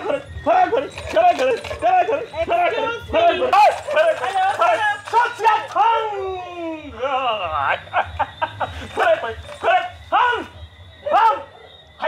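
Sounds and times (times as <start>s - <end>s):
man chanting yelping cries: 0.0s - 12.0s.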